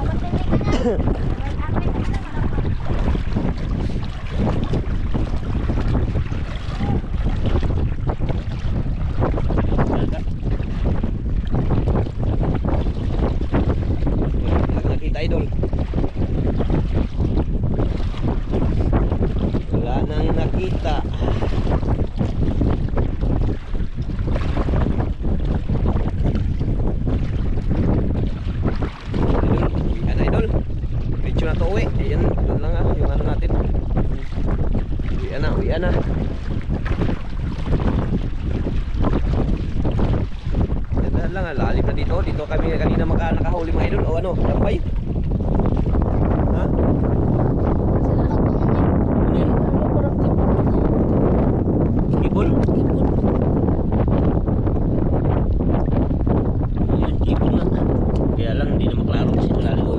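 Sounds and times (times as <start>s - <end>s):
water sloshing around legs: 0.0s - 14.6s, 15.4s - 32.0s, 32.8s - 41.1s
wind buffeting microphone: 0.0s - 59.9s.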